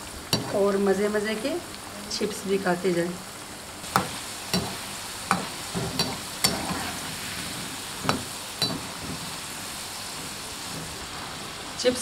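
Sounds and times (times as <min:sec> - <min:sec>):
fries sizzling in hot oil: 0:00.0 - 0:12.0
spoon knocking against pan: 0:03.9 - 0:06.8, 0:08.0 - 0:09.2.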